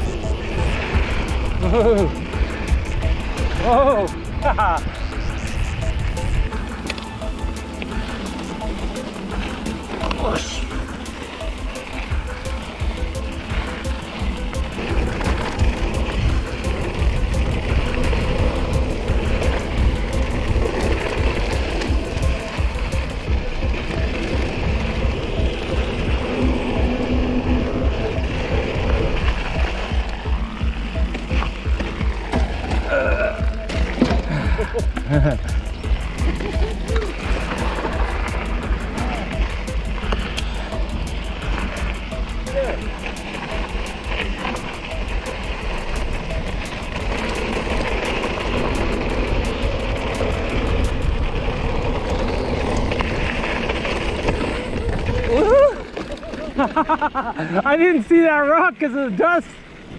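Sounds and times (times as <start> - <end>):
wind buffeting microphone: 0.0 - 57.6
mountain bike rolling on dirt: 0.0 - 59.9.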